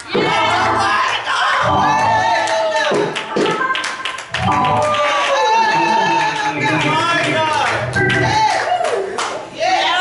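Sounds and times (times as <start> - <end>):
gospel singing with music: 0.0 - 3.7, 4.4 - 8.8.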